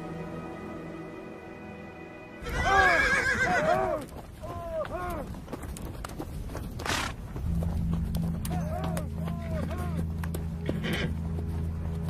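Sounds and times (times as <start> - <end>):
horses whinnying: 2.4 - 5.3, 10.6 - 11.2.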